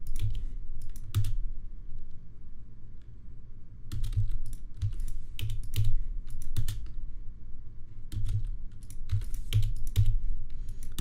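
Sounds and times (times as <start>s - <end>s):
keyboard keys clicking: 0.0s - 1.4s, 3.9s - 7.0s, 8.1s - 10.2s.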